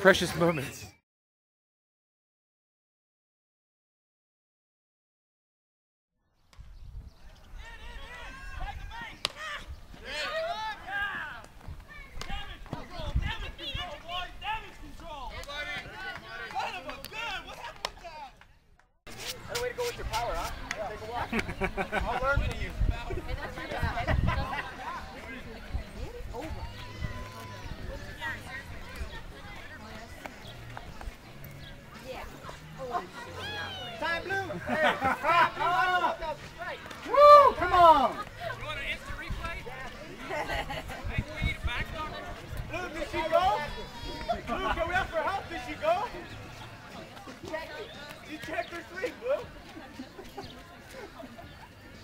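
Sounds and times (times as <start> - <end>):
wind rumbling on microphone: 6.6 - 9.0.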